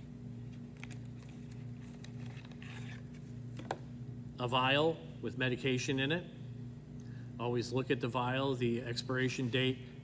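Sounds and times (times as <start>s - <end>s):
package rustling: 0.7s - 3.2s.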